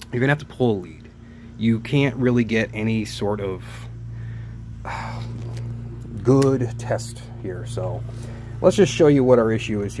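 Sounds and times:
steady low hum: 0.0s - 10.0s
person exhaling: 4.0s - 5.9s.

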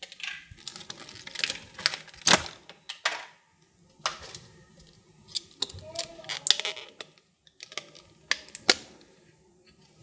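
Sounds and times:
plastic packaging crackling: 0.0s - 2.9s, 5.3s - 9.0s.

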